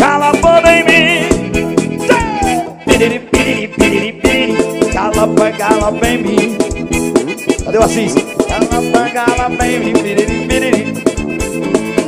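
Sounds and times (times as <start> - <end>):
instrumental band music: 0.0 - 12.0
steady drum beat: 0.0 - 12.0.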